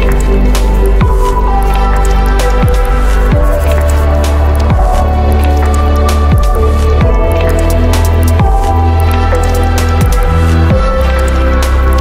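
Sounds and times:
electronic lounge music: 0:00.0 - 0:12.0.

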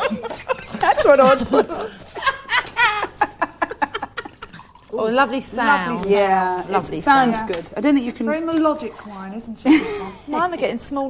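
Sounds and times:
wine gurgling in mouth: 0:03.9 - 0:05.0.

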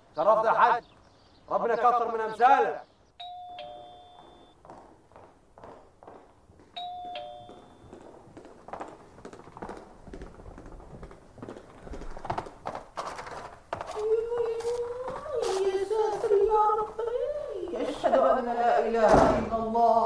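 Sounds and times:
ding-dong doorbell chime: 0:03.2 - 0:04.5, 0:06.8 - 0:07.9
soft footsteps: 0:03.2 - 0:18.4.

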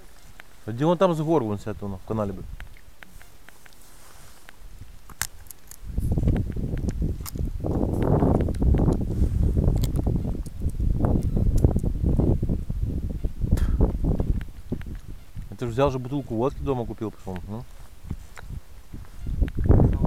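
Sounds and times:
wind buffeting microphone: 0:00.0 - 0:03.4, 0:04.2 - 0:20.0
camera handling clicks: 0:04.4 - 0:09.0, 0:09.7 - 0:11.9.

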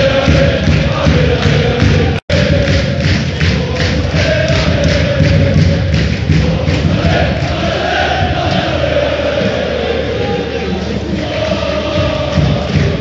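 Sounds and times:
football crowd chanting: 0:00.0 - 0:13.0.

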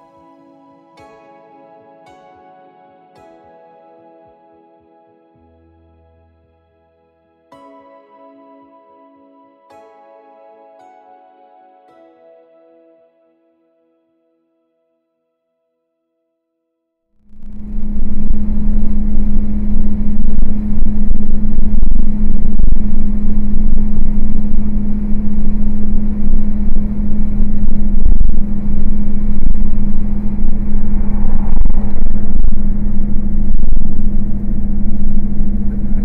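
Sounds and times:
low road rumble: 0:17.3 - 0:36.0
truck engine hum: 0:17.3 - 0:36.0.

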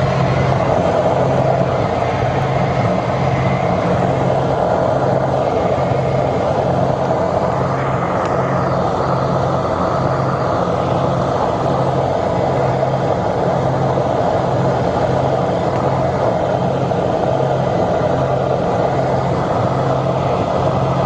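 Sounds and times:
aircraft engines droning: 0:00.0 - 0:21.0
low hum: 0:00.0 - 0:21.0.

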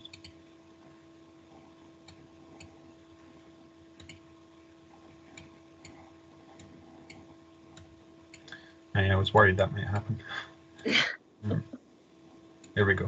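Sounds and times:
low electrical hum: 0:00.0 - 0:13.0
computer mouse clicks: 0:04.0 - 0:04.2.

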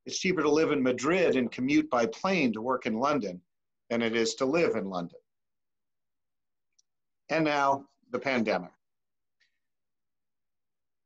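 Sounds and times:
man speaking: 0:00.0 - 0:05.3, 0:07.2 - 0:08.9.

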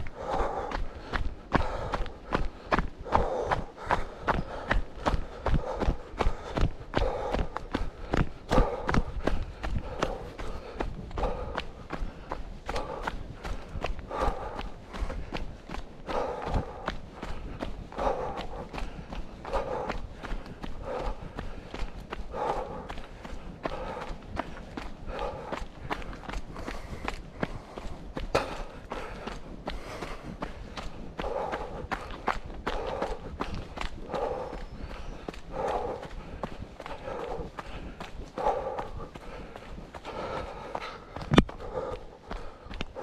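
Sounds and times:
running footsteps on dirt trail: 0:00.0 - 0:43.0.

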